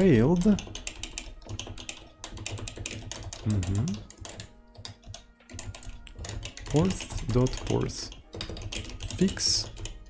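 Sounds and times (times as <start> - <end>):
computer keyboard typing: 0.0 - 10.0.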